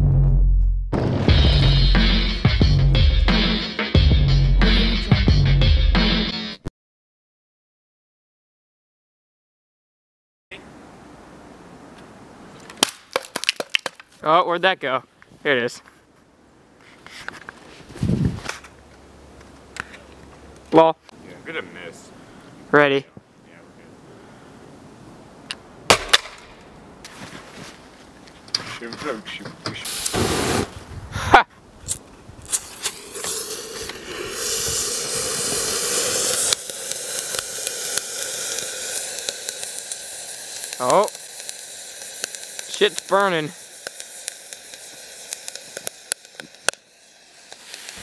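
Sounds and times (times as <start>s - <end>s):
firework hissing and fizzing: 29.8s - 30.9s, 31.9s - 48.0s
scattered crackles: 31.9s - 48.0s.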